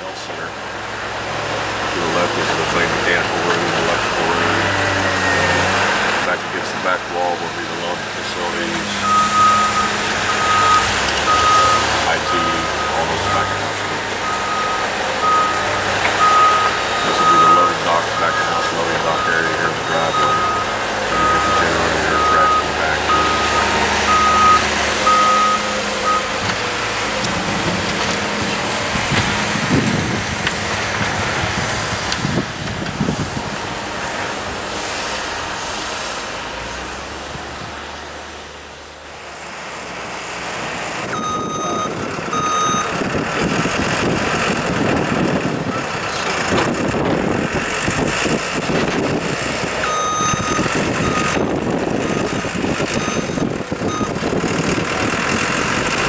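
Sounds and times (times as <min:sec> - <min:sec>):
diesel engine running: 0:00.0 - 0:56.0
reversing alarm beeps: 0:09.0 - 0:13.6, 0:14.2 - 0:26.4, 0:41.1 - 0:42.9, 0:49.9 - 0:51.5, 0:52.1 - 0:54.2.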